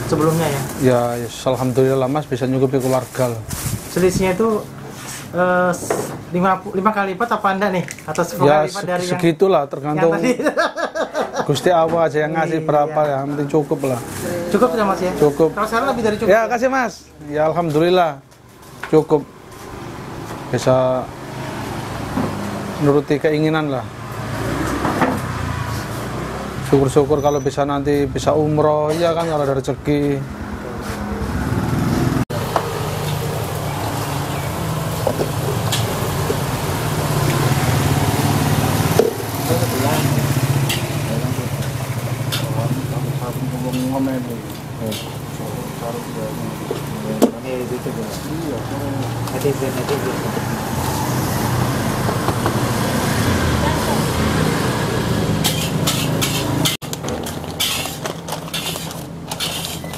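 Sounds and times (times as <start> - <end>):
man talking: 5.4 - 10.6, 11.4 - 18.2, 26.7 - 30.8, 42.4 - 50.4.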